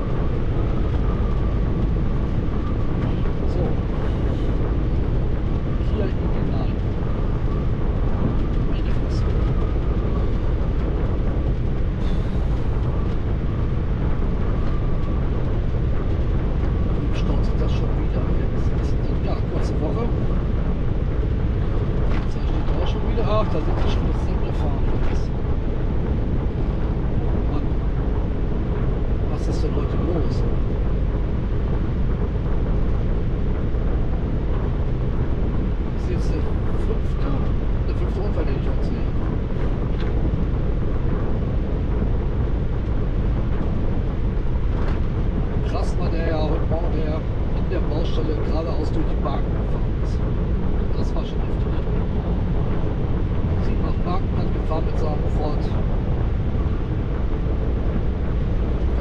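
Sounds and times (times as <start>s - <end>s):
wind noise: 0.0s - 59.0s.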